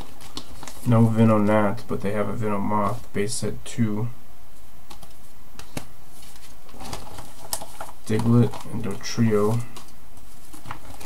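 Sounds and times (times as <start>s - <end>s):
cards and plastic sleeves rustling: 0.0s - 3.3s, 4.6s - 11.0s
steady low hum: 0.0s - 11.0s.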